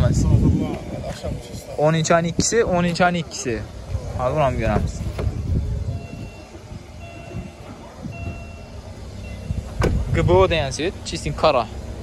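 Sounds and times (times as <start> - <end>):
low rumble of vehicles: 0.0 - 12.0.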